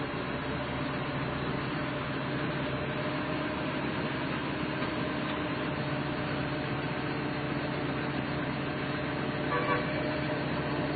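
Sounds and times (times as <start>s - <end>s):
engine running: 0.0s - 10.9s.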